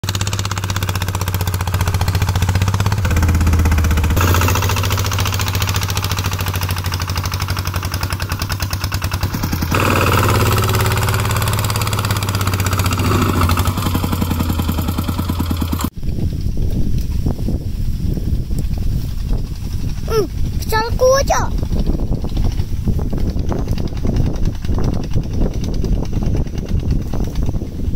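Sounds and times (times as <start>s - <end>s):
diesel tractor engine running: 0.0s - 15.9s
wind buffeting microphone: 0.1s - 27.9s.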